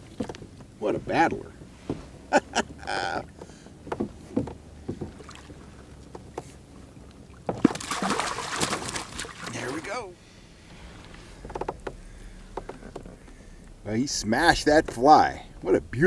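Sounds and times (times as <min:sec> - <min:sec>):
fish splashing at surface: 0:07.5 - 0:09.8.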